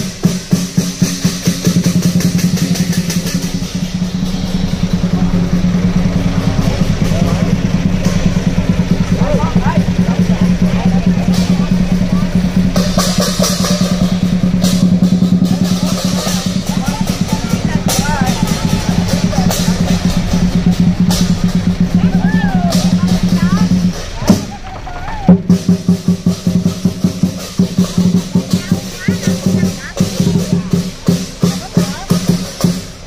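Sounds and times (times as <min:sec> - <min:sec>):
cymbals crashing: 0:00.0 - 0:33.0
drum beating: 0:00.0 - 0:33.0.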